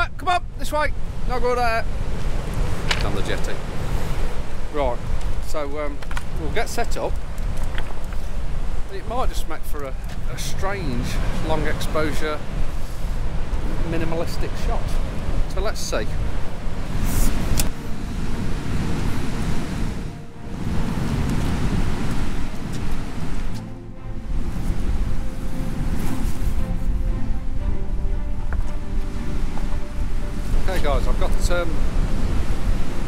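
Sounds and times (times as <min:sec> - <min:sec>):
wind buffeting microphone: 0:00.0 - 0:33.0
surf breaking on rocks: 0:01.3 - 0:09.3.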